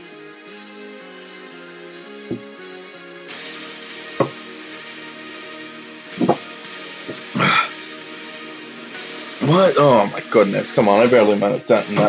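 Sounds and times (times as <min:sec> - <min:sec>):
background music: 0:00.0 - 0:12.0
man exhaling: 0:07.3 - 0:07.8.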